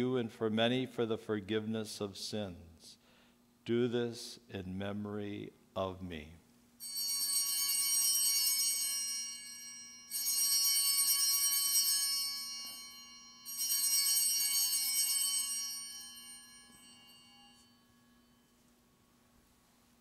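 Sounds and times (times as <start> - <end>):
cluster of small bells ringing: 6.8 - 18.6.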